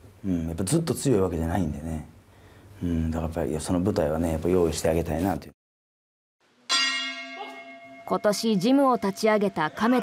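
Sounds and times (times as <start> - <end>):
boxing ring bell clang: 6.7 - 8.6.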